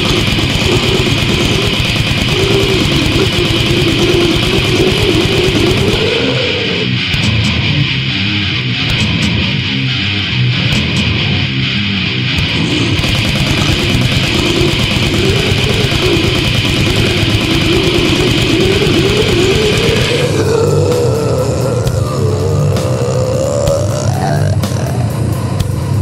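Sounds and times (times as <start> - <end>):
fast dense drumming: 0.0 - 6.5, 12.4 - 26.0
bass guitar: 0.0 - 26.0
distorted electric guitars: 0.0 - 26.0.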